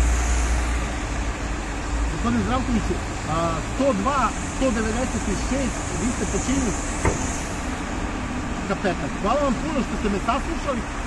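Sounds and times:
city traffic noise: 0.0 - 11.0
low engine rumble: 0.0 - 11.0
short knock: 7.0 - 7.4.

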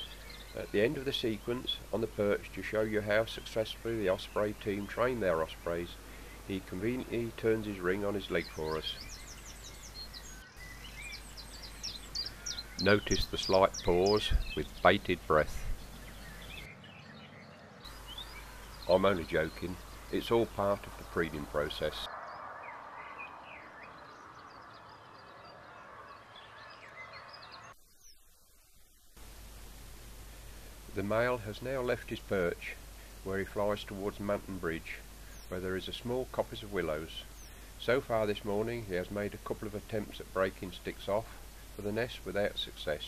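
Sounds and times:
faint steady hiss: 0.0 - 16.7, 17.8 - 22.1, 27.6 - 43.0
small birds chirping: 0.0 - 43.0
songbirds singing: 0.0 - 43.0.

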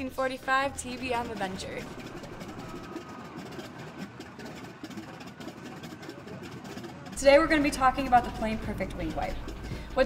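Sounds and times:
radial engine droning: 0.0 - 10.0.

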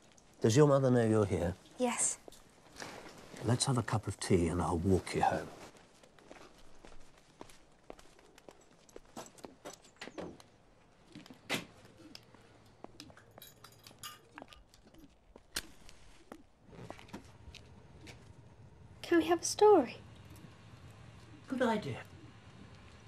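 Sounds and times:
footsteps: 4.7 - 10.5, 11.1 - 18.4.

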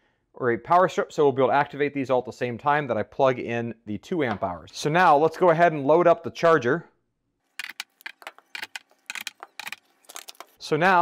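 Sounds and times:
plastic battery packs clicking: 7.6 - 10.6.

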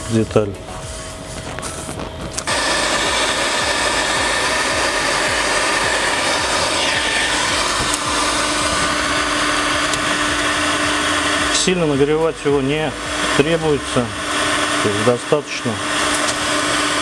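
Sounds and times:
heat gun running: 0.0 - 17.0.

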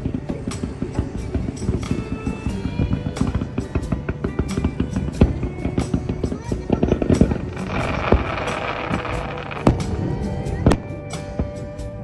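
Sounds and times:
fireworks bangs: 0.0 - 11.5
fireworks crackling: 0.0 - 11.7
music: 0.0 - 12.0.

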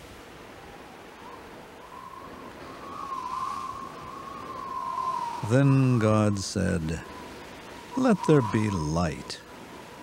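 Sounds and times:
soundtrack hiss: 2.0 - 10.0
thin wavering high tone: 7.9 - 9.4.

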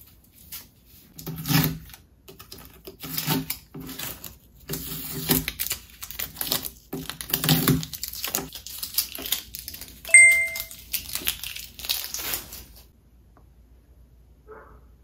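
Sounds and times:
paper stickers peeling and crinkling: 1.8 - 12.9
short high beep: 10.1 - 10.7.

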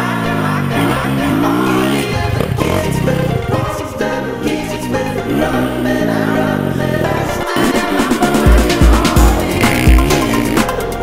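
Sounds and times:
motocross bike engine revving: 0.0 - 11.0
music playing: 0.0 - 11.0.

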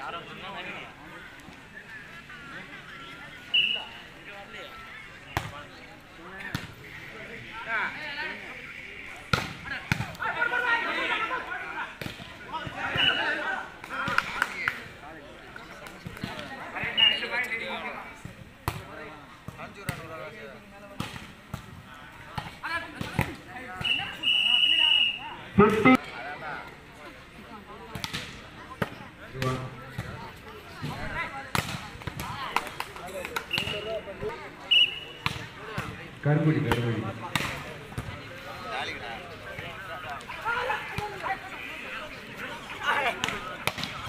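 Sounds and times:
referee's whistle blast: 3.5 - 4.0, 12.8 - 13.3, 16.8 - 17.3, 23.8 - 25.2, 33.5 - 34.0, 34.7 - 35.2.

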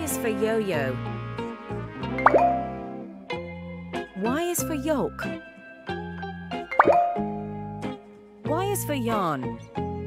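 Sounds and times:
children's music: 2.0 - 9.9
rising cartoon pop: 2.2 - 2.7, 6.8 - 7.3.

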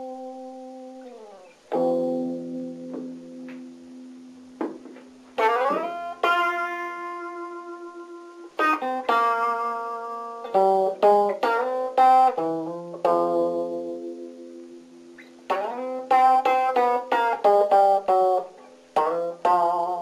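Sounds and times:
guitar played with pick: 0.0 - 20.0.

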